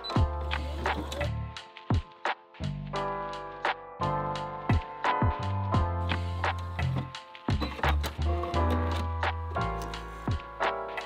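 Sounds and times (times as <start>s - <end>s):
held bass and chords: 0.0s - 11.0s.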